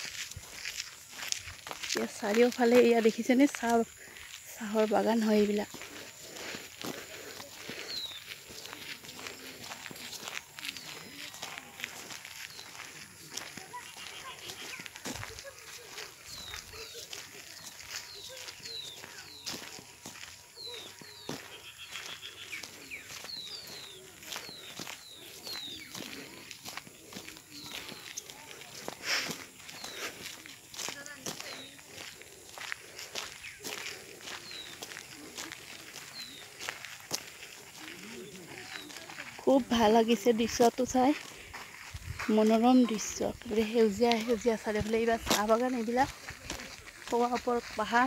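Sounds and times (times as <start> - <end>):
footsteps on dirt path: 0.0 - 48.0
faint voices: 1.9 - 48.0
bird chirping: 7.7 - 9.4, 10.1 - 28.6, 33.2 - 36.8.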